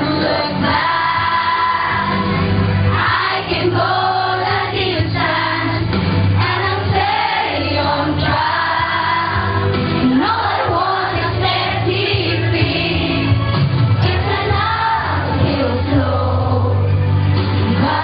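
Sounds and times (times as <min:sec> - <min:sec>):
children and adults singing: 0:00.0 - 0:16.9, 0:17.7 - 0:18.0
low bass notes: 0:00.0 - 0:18.0.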